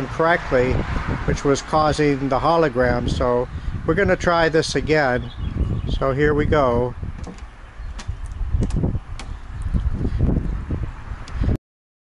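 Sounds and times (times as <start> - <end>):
wind rumble on microphone: 0.0 - 11.6.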